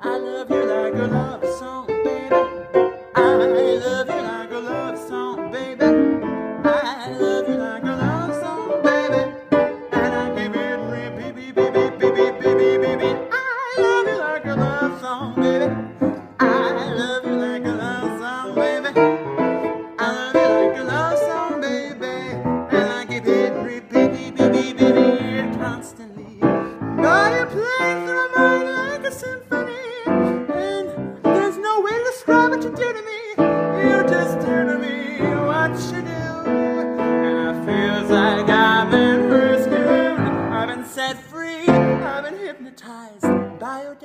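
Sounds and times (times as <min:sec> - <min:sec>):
woman singing: 0:00.0 - 0:02.5
jazz piano: 0:00.0 - 0:42.6, 0:43.2 - 0:43.7.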